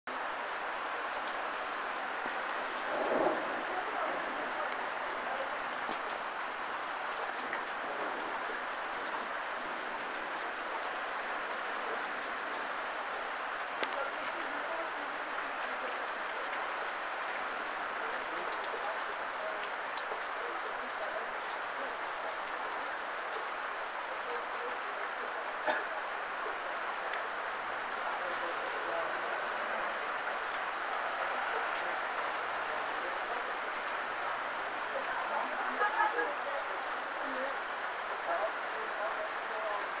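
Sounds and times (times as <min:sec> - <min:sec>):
heavy rain falling: 0:00.0 - 0:40.0.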